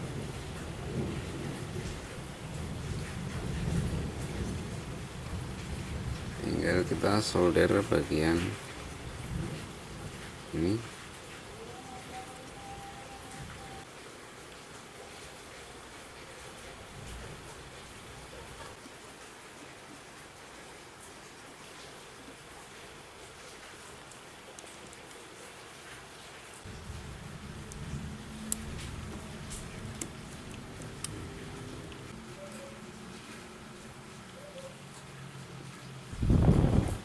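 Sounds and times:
faint steady hiss: 0:00.0 - 0:37.0.

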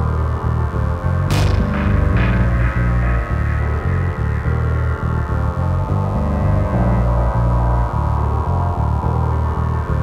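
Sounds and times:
distorted bass line: 0:00.0 - 0:10.0
crash-like noise burst: 0:01.3 - 0:05.3
sustained synth tone: 0:01.3 - 0:09.5.

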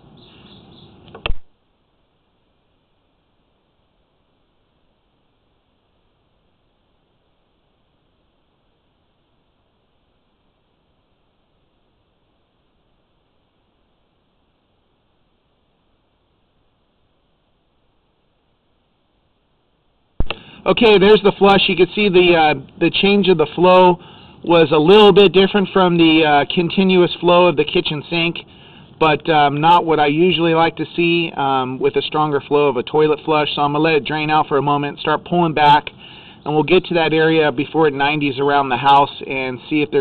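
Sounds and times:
faint background noise: 0:00.0 - 0:40.0
sharp click: 0:01.0 - 0:01.5, 0:20.2 - 0:20.5.

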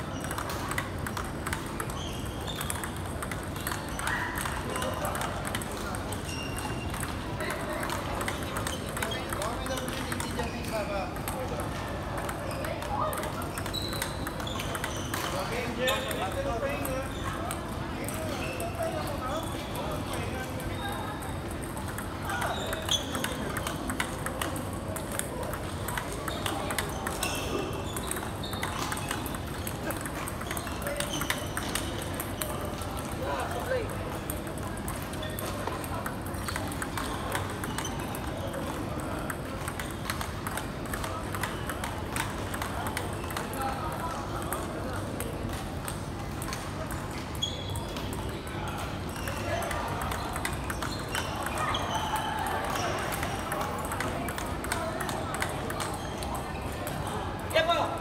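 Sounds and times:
table tennis balls clicking: 0:00.0 - 0:58.0.

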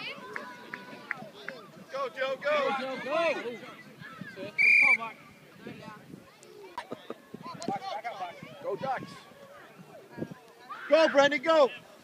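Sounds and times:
distant shouting and chatter: 0:00.0 - 0:12.0.

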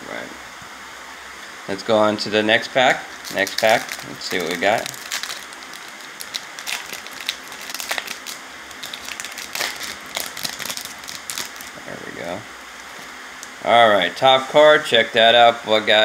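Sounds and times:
foil wrapper tearing and crinkling: 0:03.2 - 0:11.8.

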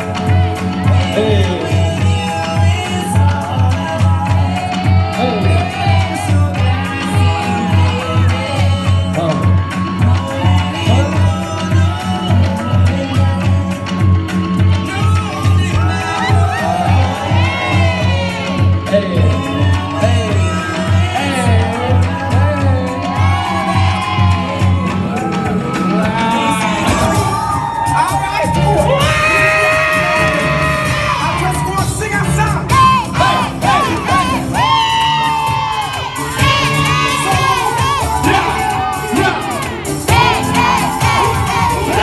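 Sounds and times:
crowd cheering and shouting: 0:00.0 - 0:42.0
dancehall music with bass beat: 0:00.0 - 0:42.0.

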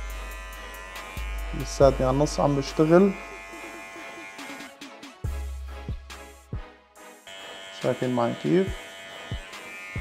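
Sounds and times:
hair clipper buzzing: 0:00.0 - 0:04.8, 0:07.3 - 0:10.0
background music: 0:00.0 - 0:10.0.

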